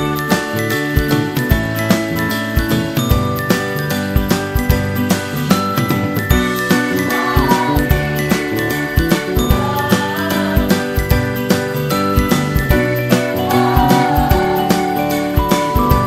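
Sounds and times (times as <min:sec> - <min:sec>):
upbeat festive music with bells: 0:00.0 - 0:16.0.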